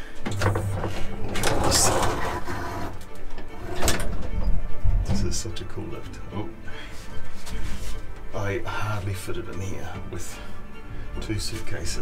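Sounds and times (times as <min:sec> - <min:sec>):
rattling scraping clatter: 0:00.3 - 0:04.7.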